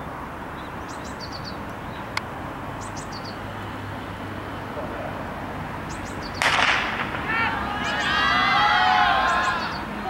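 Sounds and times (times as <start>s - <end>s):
starter's pistol crack: 6.4s - 7.3s
voices shouting encouragement: 6.4s - 10.0s.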